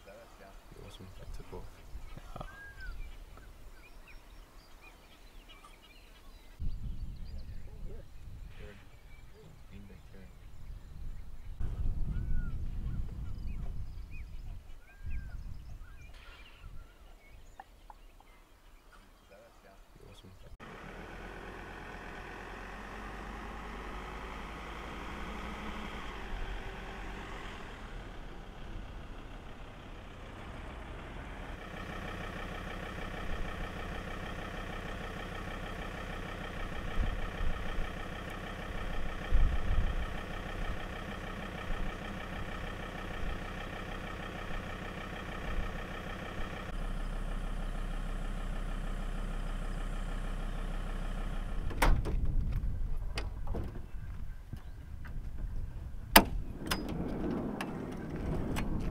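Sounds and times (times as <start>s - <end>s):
vehicle engine idling: 0.0s - 18.6s, 19.3s - 58.9s.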